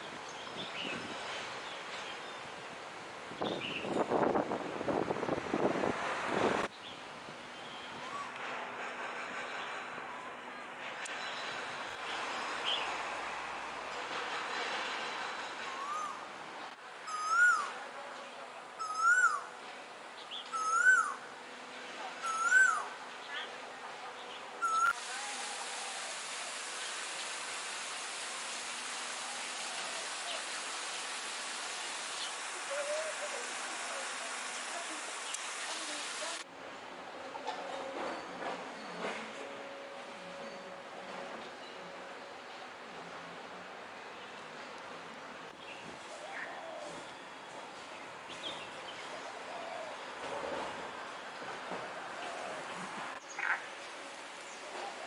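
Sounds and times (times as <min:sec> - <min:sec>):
bird whistling: 0:17.1 - 0:17.6, 0:18.8 - 0:19.4, 0:20.5 - 0:21.2, 0:22.2 - 0:22.9, 0:24.6 - 0:25.0
background hiss: 0:24.1 - 0:36.8.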